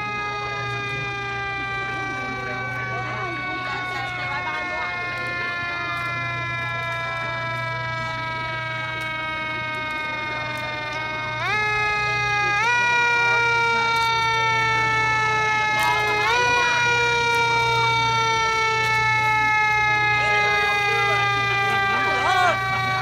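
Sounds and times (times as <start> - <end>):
vehicle siren: 0.0 - 23.0
voices: 0.0 - 23.0.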